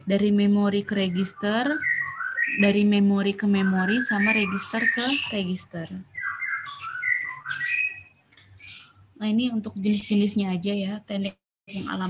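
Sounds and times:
bird squawk: 0:00.9 - 0:05.5, 0:06.1 - 0:09.0
bird chirping whistled notes: 0:06.2 - 0:09.0.

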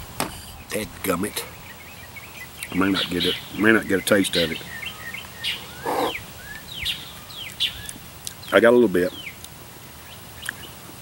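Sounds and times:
small songbirds chirping: 0:00.5 - 0:10.9.

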